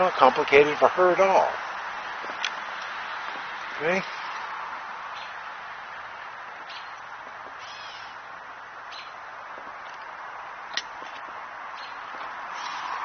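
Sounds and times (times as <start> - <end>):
birds chirping: 0.0 - 13.0
outdoor background hiss: 0.0 - 13.0.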